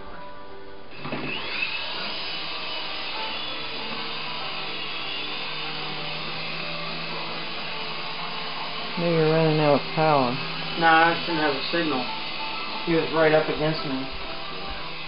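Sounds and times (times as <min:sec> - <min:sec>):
toy helicopter rotors whirring: 0:01.3 - 0:15.0.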